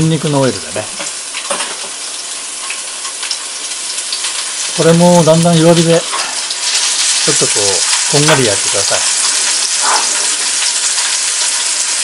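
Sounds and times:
meat sizzling in oil: 0.0 - 12.0.

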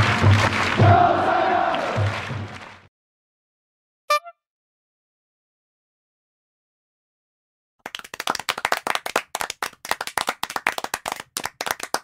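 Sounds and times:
applause: 0.0 - 2.9, 7.8 - 12.0.

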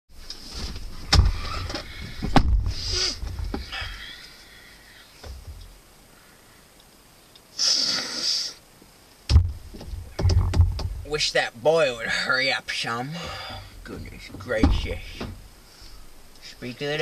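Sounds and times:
clothes and seat rustling: 0.2 - 3.9, 13.2 - 17.0
thud: 1.1 - 3.7, 9.3 - 11.0, 14.6 - 15.4
short hissing: 2.7 - 5.2, 7.4 - 8.7.

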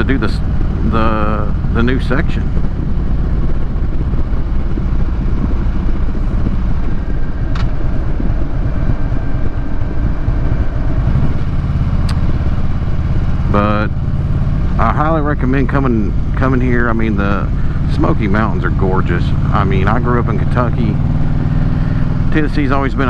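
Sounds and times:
motorcycle engine running: 0.0 - 23.0
road and wind noise: 0.0 - 23.0.

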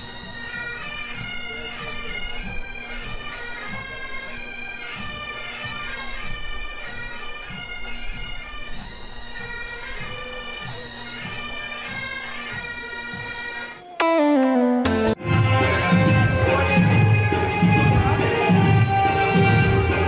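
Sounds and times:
drum beats: 14.0 - 17.1
bagpipe melody over drone: 14.0 - 20.0.

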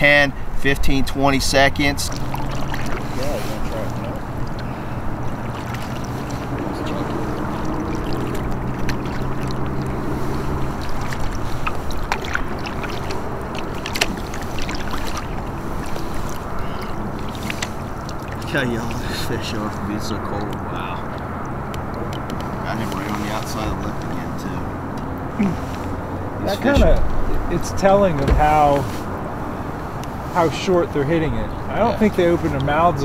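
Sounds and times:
water against kayak hull: 1.6 - 30.6
sharp knocks: 28.1 - 28.9.

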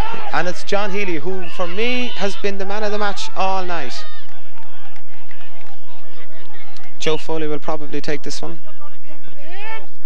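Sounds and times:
distant crowd shouting: 0.0 - 7.5, 8.5 - 10.0.

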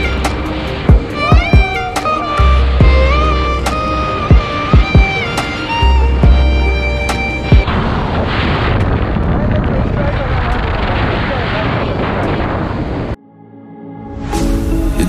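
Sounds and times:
background music: 0.0 - 7.8, 13.1 - 15.0
wind roar on microphone: 0.0 - 13.2.

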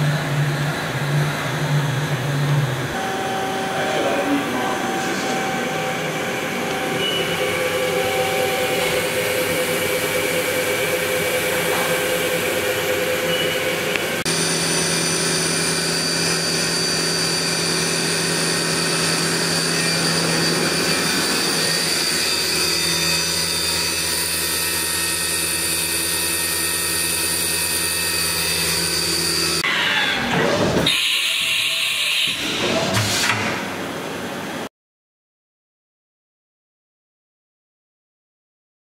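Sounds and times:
machine spindle whining: 0.0 - 33.0.

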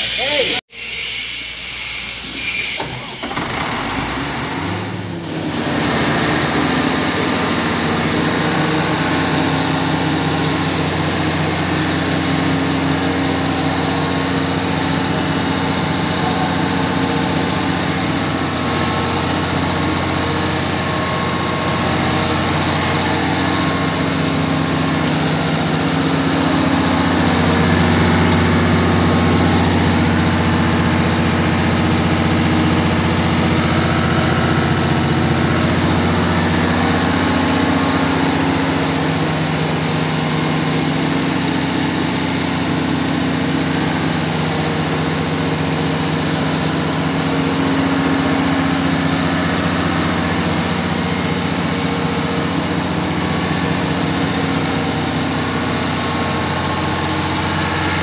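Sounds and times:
diesel generator engine hum: 2.8 - 58.0.

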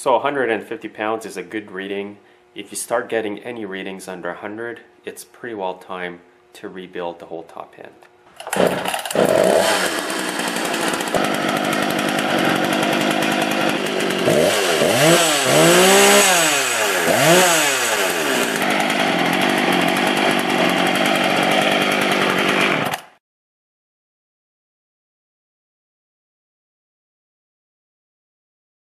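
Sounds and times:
chainsaw engine idling and revving: 8.4 - 23.2.

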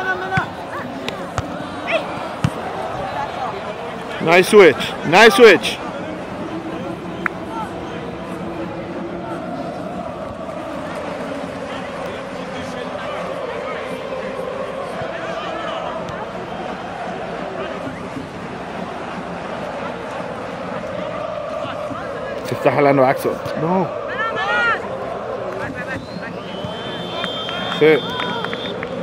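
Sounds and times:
distant chatter of people: 0.0 - 29.0.

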